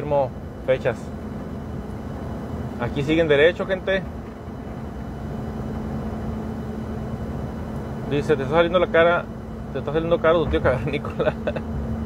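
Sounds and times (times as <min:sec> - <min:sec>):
engine and road noise in cab: 0:00.0 - 0:12.0.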